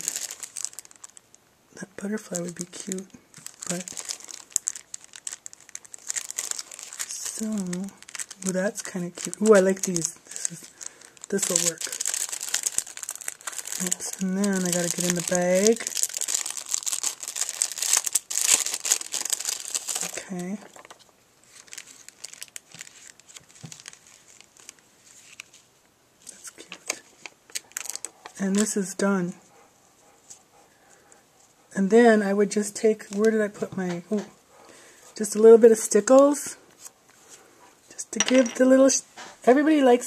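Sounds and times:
plastic packets crinkling: 0.0s - 29.0s, 32.6s - 33.5s.

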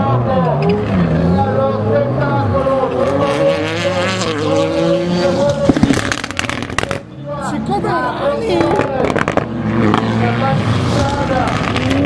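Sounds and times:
car engine at high revs: 0.0s - 12.0s
exhaust crackles: 0.2s - 7.1s, 8.6s - 12.0s.

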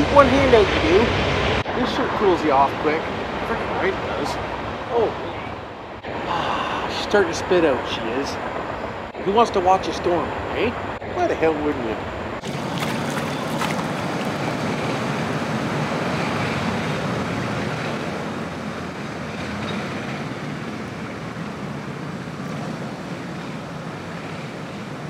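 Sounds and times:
pool water sloshing and splashing: 12.4s - 17.7s.

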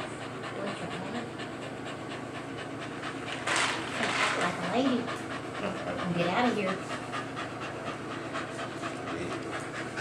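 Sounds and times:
dog panting: 0.0s - 10.0s.

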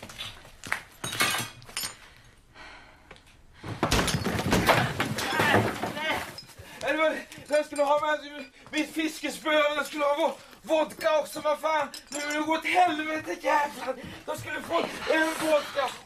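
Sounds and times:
something breaking with clatter: 3.8s - 6.5s.

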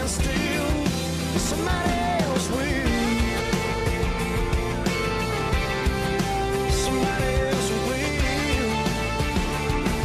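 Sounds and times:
instrumental music with guitar: 0.0s - 10.0s.

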